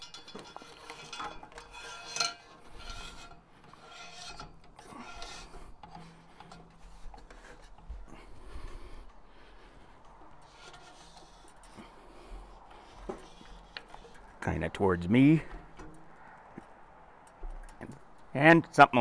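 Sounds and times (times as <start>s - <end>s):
metal rubbing and scraping: 0.0s - 18.4s.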